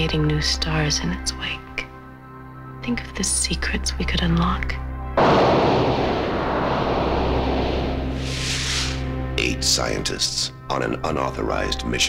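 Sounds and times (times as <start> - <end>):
low steady drone: 5.2 - 9.0
rumbling boom: 5.2 - 9.2.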